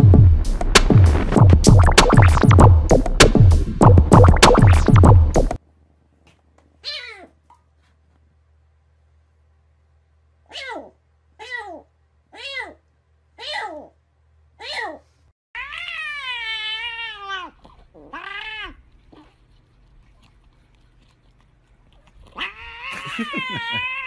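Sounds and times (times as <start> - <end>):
cat meowing: 12.4 - 12.8, 15.6 - 18.8, 22.4 - 24.0.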